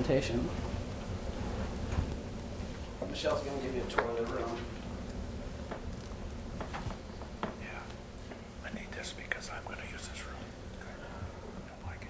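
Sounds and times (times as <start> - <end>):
person whispering: 8.6 - 12.0.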